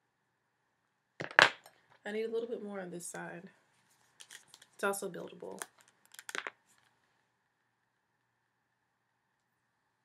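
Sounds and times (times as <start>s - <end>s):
small hard objects clattering: 5.5s - 6.6s.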